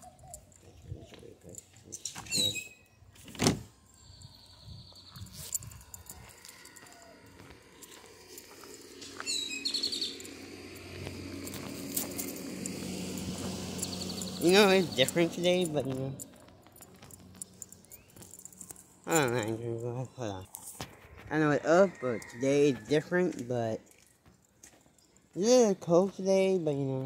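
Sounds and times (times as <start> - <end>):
birds chirping: 0.0 - 26.9.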